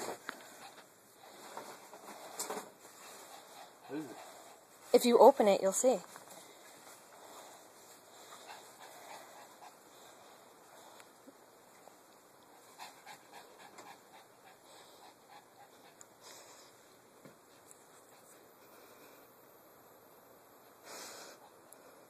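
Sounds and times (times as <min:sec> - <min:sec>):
dog panting: 0:00.0 - 0:05.0, 0:06.2 - 0:11.1, 0:11.8 - 0:18.6.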